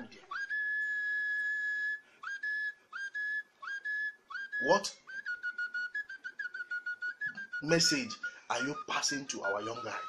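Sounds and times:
high whistle swooping up: 0.0s - 10.0s.

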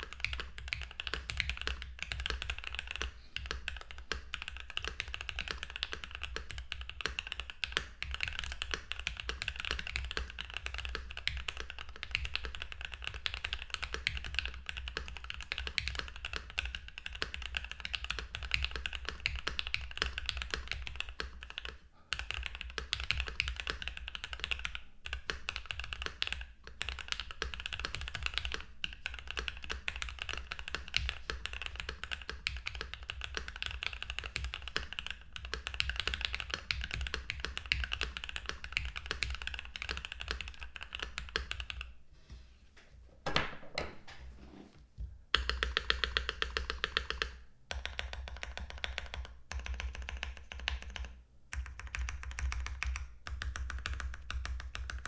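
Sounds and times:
mechanical keyboard typing: 0.0s - 41.9s, 45.3s - 55.0s.

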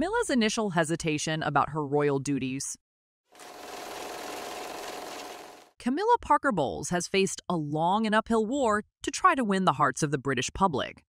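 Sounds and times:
mechanical whirring and rattling: 3.4s - 5.7s.

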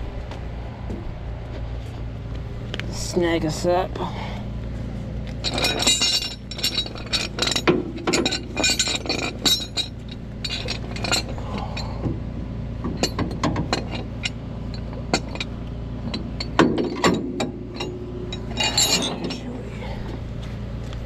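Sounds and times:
steady low hum: 0.0s - 21.0s
chain and hooks clinking: 5.4s - 12.0s, 13.0s - 20.1s.

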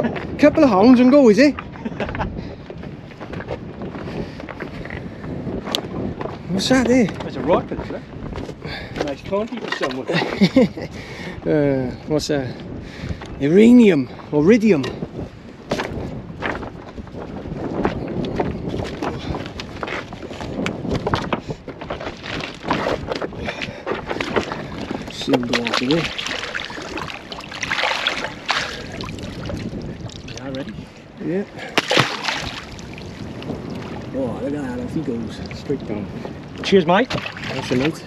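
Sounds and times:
wind on microphone: 0.0s - 38.0s
seawater splashing at shoreline: 24.0s - 30.9s, 31.6s - 36.0s, 37.0s - 38.0s.

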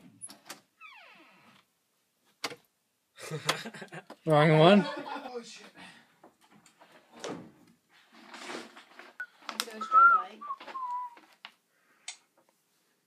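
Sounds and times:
person whistling: 9.8s - 11.2s.

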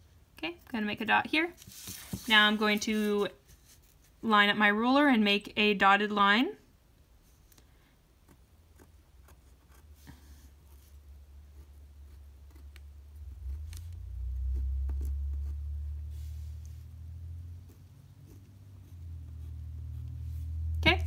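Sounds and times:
pen ticking and scratching on paper: 8.2s - 16.1s, 17.3s - 20.8s.

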